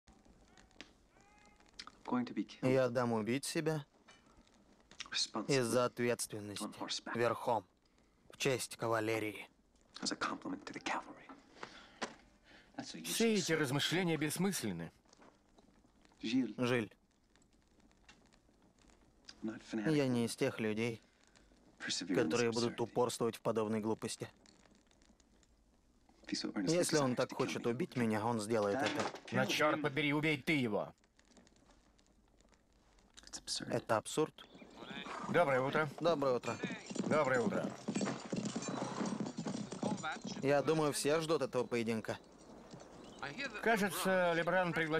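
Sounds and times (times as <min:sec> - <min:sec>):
man speaking softly: 0:05.0 - 0:07.6, 0:08.4 - 0:11.4, 0:21.8 - 0:24.3, 0:26.3 - 0:30.9
horse hooves on dirt: 0:34.4 - 0:44.9.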